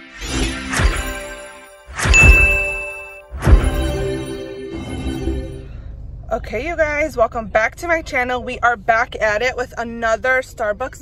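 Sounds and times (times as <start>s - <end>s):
sharp hit with bright ding: 2.0s - 3.9s
sudden hit: 2.1s - 3.9s
button animation sound effect: 2.2s - 3.2s.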